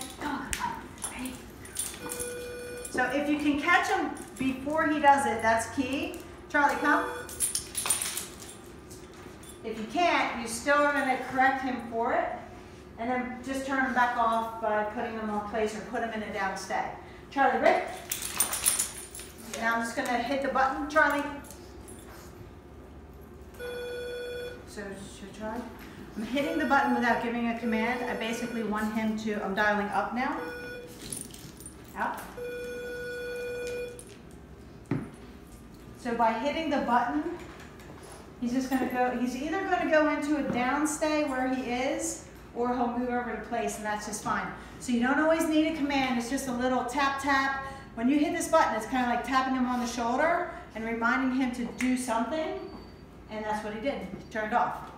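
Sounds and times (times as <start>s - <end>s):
metallic jingling of collar tags: 1.0s - 3.0s, 7.2s - 9.6s, 17.9s - 19.6s, 30.9s - 32.0s.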